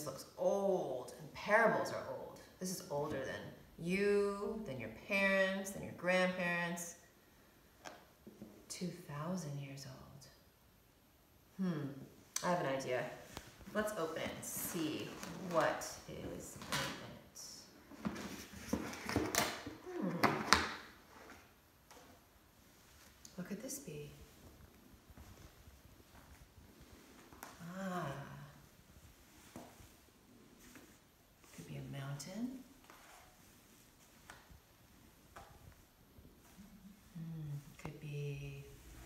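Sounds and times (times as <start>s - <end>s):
cloth rustling on floor: 17.7s - 19.8s, 20.7s - 23.4s, 24.0s - 37.2s
woman murmuring: 36.9s - 37.8s.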